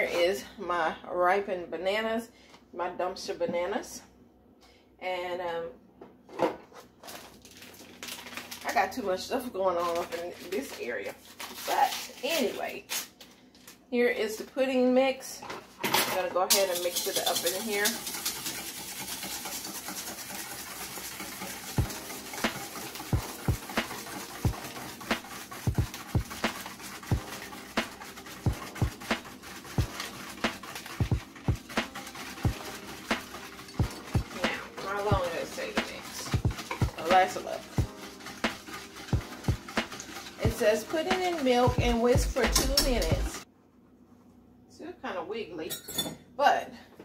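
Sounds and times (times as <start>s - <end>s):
metal utensil knocking on metal bowl: 40.5s - 43.3s.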